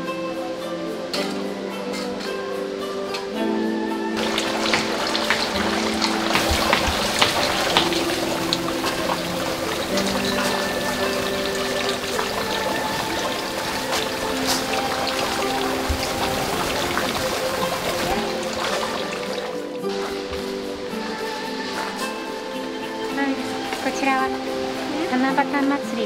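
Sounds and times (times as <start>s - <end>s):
acoustic guitar music: 0.8s - 26.0s
water splashing onto stones: 4.2s - 25.2s.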